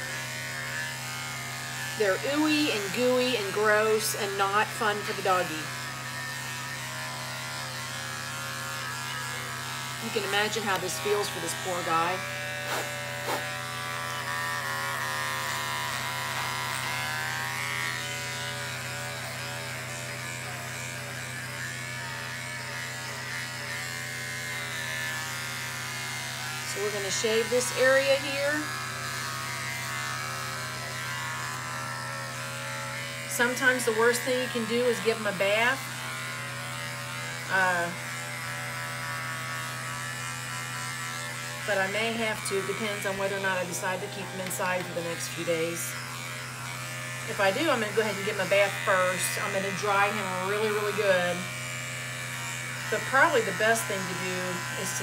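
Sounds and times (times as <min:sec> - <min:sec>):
electric clippers buzzing: 0:00.0 - 0:55.0.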